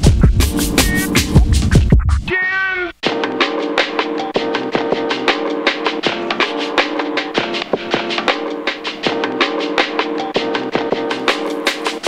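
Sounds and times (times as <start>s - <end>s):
hip-hop beat with drums and bass: 0.0s - 12.0s.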